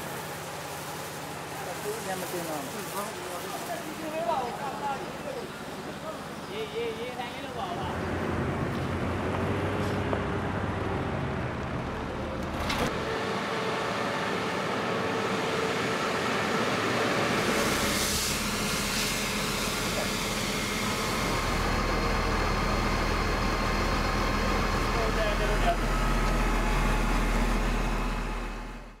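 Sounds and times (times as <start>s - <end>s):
water jets spraying pavement: 0.0s - 10.9s, 13.2s - 27.9s
diesel truck engines running: 4.4s - 29.0s.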